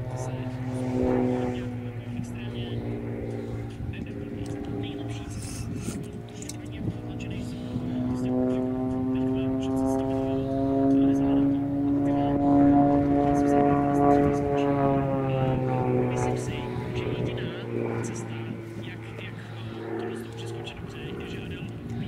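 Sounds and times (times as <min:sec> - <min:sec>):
propeller plane engine droning: 0:00.0 - 0:22.0.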